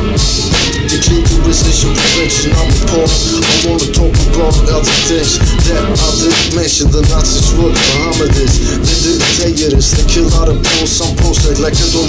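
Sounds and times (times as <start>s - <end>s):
hip hop beat with heavy bass: 0.0s - 12.0s
person rapping: 0.0s - 12.0s.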